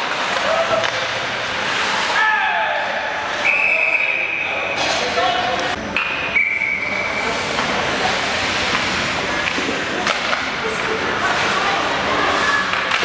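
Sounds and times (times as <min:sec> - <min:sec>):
hockey game noise: 0:00.0 - 0:13.0
spectators' voices: 0:00.0 - 0:13.0.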